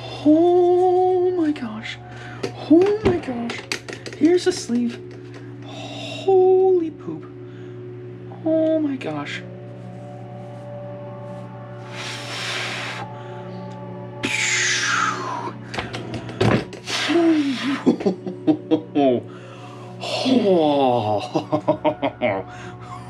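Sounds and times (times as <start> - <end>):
background music: 0.0 - 23.0
man laughing: 17.2 - 19.3, 20.0 - 23.0.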